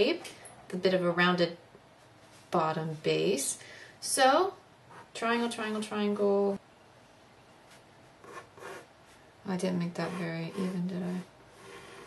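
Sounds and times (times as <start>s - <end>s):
pencil scratching on paper: 8.2s - 8.9s, 10.0s - 12.0s.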